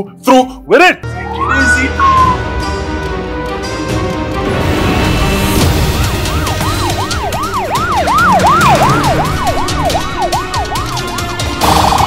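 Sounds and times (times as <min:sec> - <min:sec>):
police siren wailing: 0:05.7 - 0:12.0.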